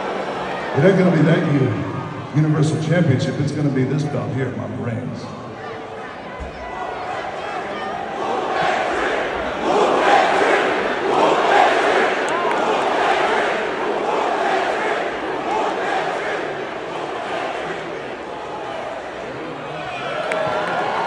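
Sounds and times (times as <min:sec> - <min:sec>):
crowd cheering and shouting: 0:00.0 - 0:21.0.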